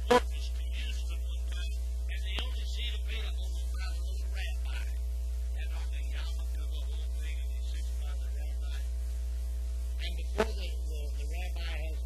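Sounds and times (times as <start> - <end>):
high-pitched bleed: 0.0 - 0.4
electrical mains hum: 0.0 - 12.0
tape hiss: 0.0 - 12.0.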